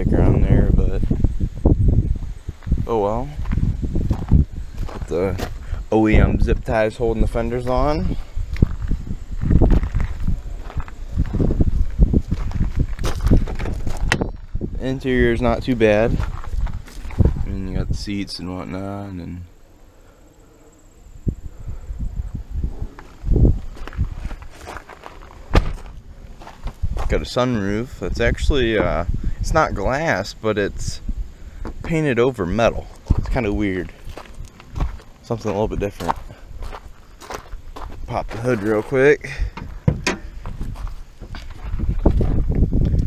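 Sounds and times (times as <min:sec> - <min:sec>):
microphone handling bumps: 0:00.0 - 0:06.7, 0:07.7 - 0:18.0, 0:22.6 - 0:27.4, 0:32.9 - 0:43.0
footsteps: 0:02.2 - 0:05.8, 0:07.6 - 0:14.7, 0:15.5 - 0:17.8, 0:22.7 - 0:27.4, 0:32.8 - 0:43.0
loud thump: 0:25.5 - 0:25.9, 0:39.6 - 0:40.3
knocks and handling noise: 0:39.5 - 0:41.8.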